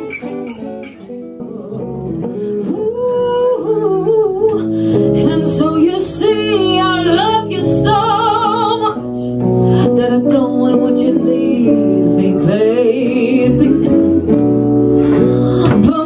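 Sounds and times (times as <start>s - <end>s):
guitars playing: 0.0s - 16.0s
woman singing with vibrato: 0.2s - 16.0s.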